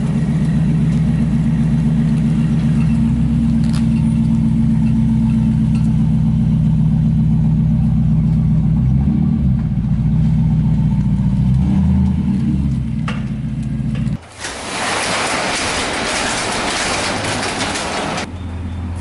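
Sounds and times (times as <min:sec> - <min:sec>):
truck engine idling: 0:00.0 - 0:19.0.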